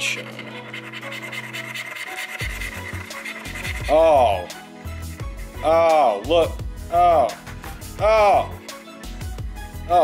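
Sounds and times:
coin scraping a scratch card: 0.0s - 4.2s
background music: 0.0s - 10.0s.

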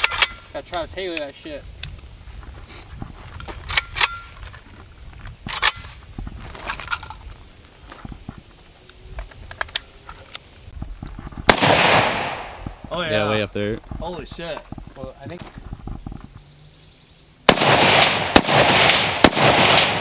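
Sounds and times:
rifle shot: 11.5s - 12.7s, 17.5s - 20.0s.

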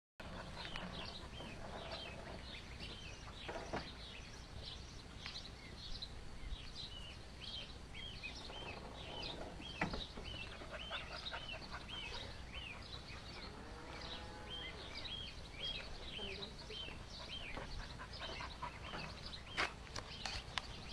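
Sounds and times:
duckling peeping: 10.2s - 13.5s.

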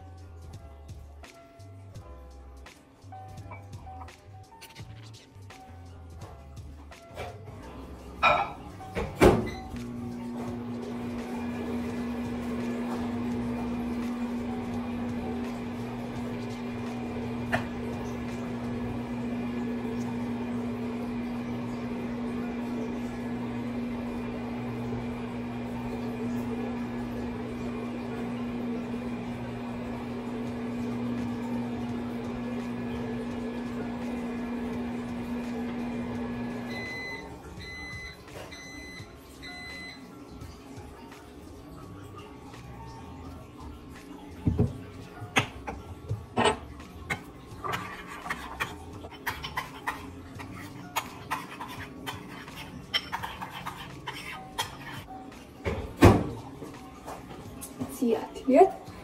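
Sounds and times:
microwave oven humming: 7.2s - 47.7s.

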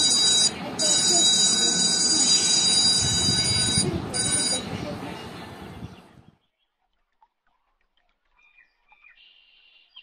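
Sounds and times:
phone high-pitched ringing tone: 0.0s - 4.8s.

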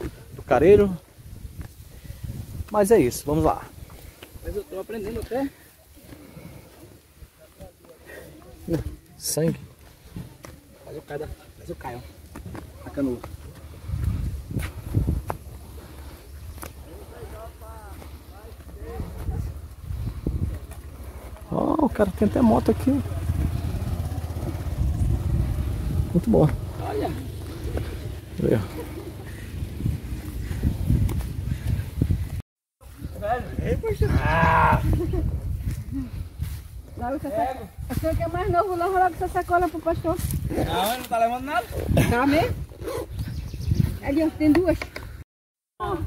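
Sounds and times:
wind rumble on microphone: 0.0s - 4.6s, 13.2s - 17.9s, 18.6s - 21.8s, 22.5s - 45.2s
footsteps on dirt path: 1.0s - 33.1s, 34.9s - 45.2s.

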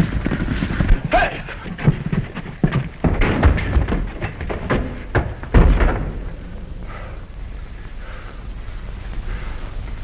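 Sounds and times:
film soundtrack hiss and rumble: 0.0s - 10.0s.

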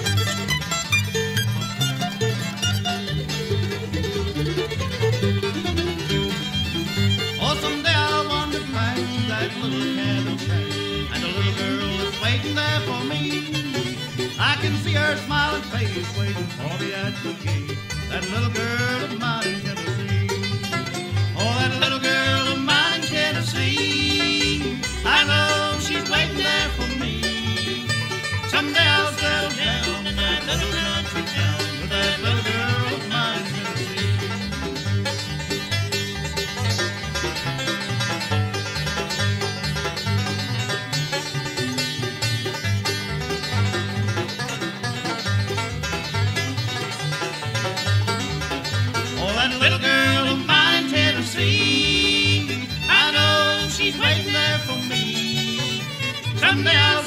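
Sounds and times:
banjo: 0.0s - 57.0s
fiddle: 0.0s - 57.0s
guitar: 0.0s - 57.0s.

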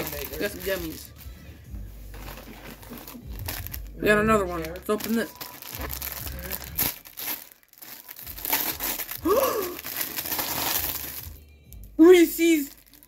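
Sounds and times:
wrapping paper tearing and crinkling: 0.0s - 1.3s, 2.1s - 11.4s, 12.0s - 13.0s.

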